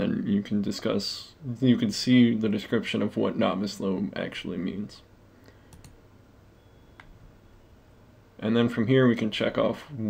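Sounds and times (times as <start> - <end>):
computer mouse clicks: 5.7 - 6.0.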